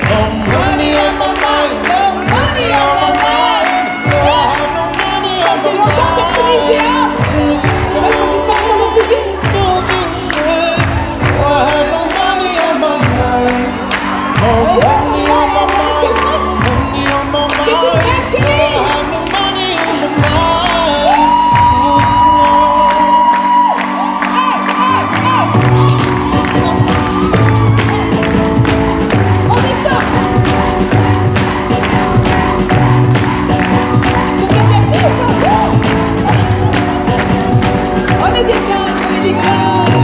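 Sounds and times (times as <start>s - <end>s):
crowd cheering: 0.0s - 40.0s
loud music with vocals: 0.0s - 40.0s.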